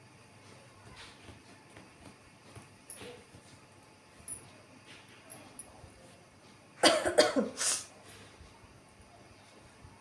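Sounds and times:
faint room noise: 0.0 - 10.0
woman coughing: 6.8 - 7.7.

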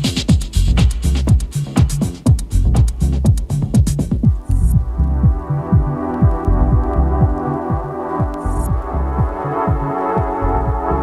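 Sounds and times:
deep kick drum pulsing: 0.0 - 11.0
hi-hats: 0.0 - 11.0.

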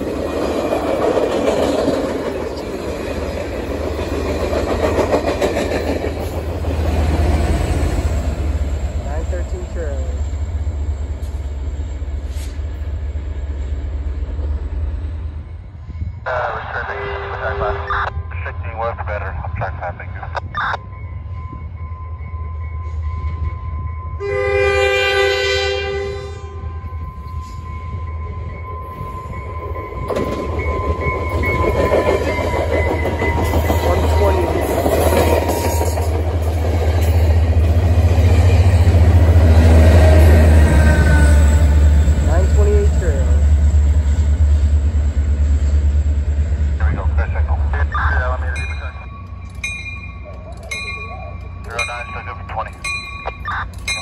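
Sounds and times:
wheels on rail: 0.0 - 16.2, 20.8 - 46.8, 48.6 - 54.0
train engine rumble: 0.0 - 54.0
train horn chord: 24.2 - 27.6.

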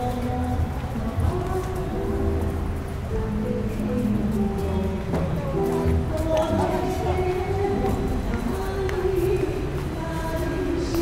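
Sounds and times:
background music: 0.0 - 11.0
people talking: 3.4 - 11.0.

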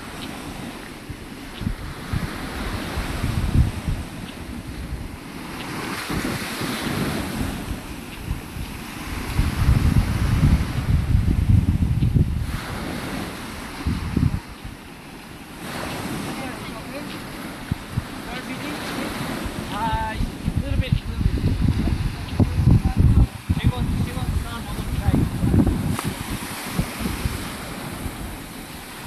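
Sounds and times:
surf washing onto sand: 0.0 - 29.0
wind buffeting microphone: 0.0 - 29.0.

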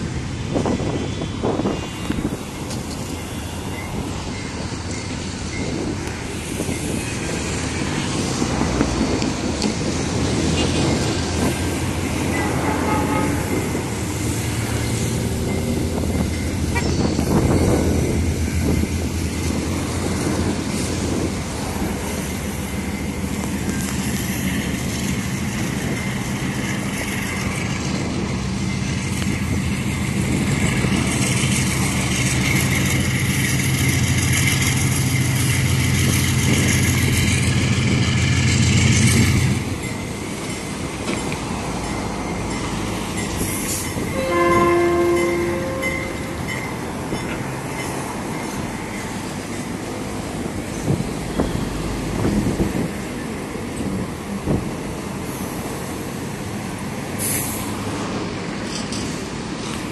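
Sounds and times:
diesel locomotive engines running: 0.0 - 59.9
locomotive horn blast: 12.2 - 13.9, 44.1 - 46.5.

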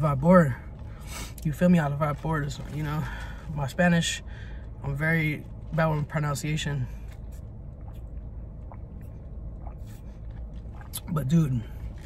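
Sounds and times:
car idling: 0.0 - 12.0.

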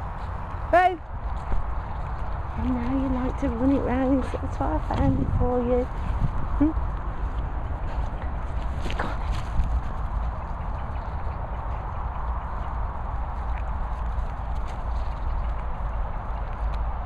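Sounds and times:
footsteps on grass: 0.0 - 15.8
steady low rumble: 0.0 - 17.0.

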